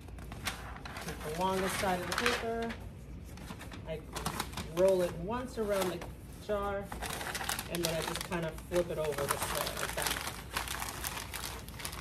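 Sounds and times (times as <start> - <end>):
paper crinkling and rustling: 0.0 - 12.0.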